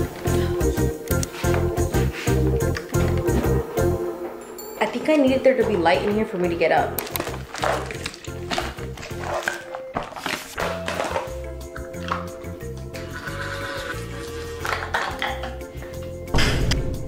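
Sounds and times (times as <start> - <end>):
background music with bass line: 0.0 - 4.2, 6.9 - 17.0.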